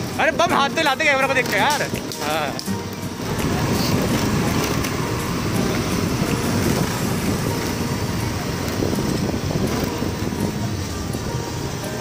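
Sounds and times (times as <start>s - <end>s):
motor scooter running: 0.0s - 12.0s
music: 0.0s - 12.0s
traffic: 0.0s - 12.0s.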